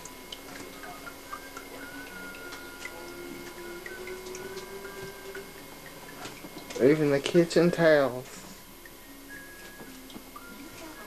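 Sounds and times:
faint wavering tone: 0.0s - 6.0s.

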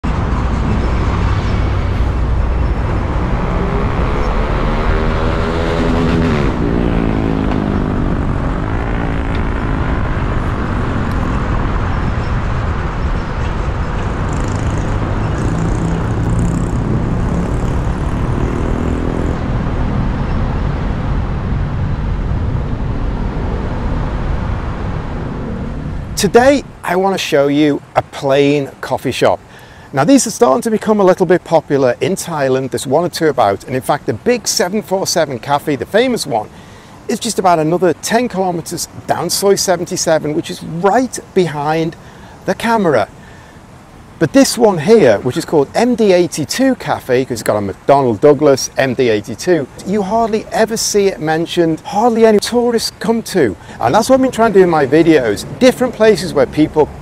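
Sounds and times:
passing vehicle engine: 0.0s - 27.0s, 53.4s - 57.0s
road traffic noise: 0.0s - 57.0s.

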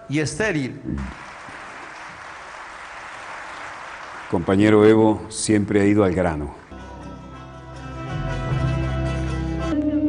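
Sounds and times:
large audience applauding: 1.0s - 5.1s.

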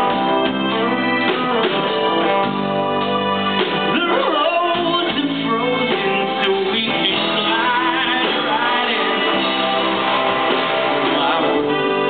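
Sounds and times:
electric guitar: 0.0s - 12.0s
keyboard and accordion chords: 0.0s - 12.0s.

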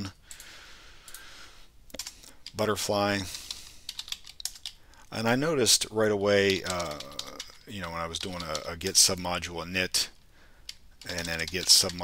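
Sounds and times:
keyboard typing: 1.9s - 2.6s, 3.2s - 5.0s, 6.3s - 9.2s, 10.6s - 12.0s.

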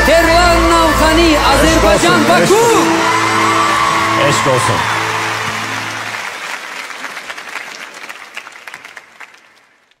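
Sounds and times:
audience applauding: 1.7s - 10.0s.

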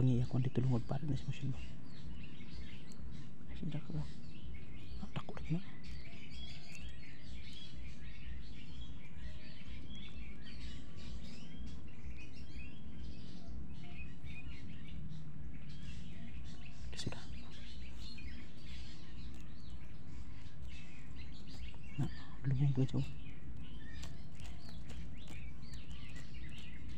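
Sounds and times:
small birds chirping: 0.0s - 26.9s.

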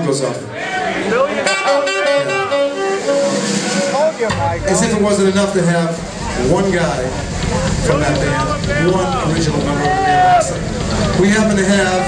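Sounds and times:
band instrument melodic phrase: 1.2s - 12.0s.

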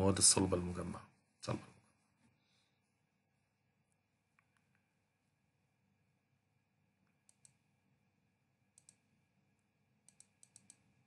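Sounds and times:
computer mouse clicks: 7.0s - 7.7s, 8.7s - 9.1s, 10.0s - 11.0s.

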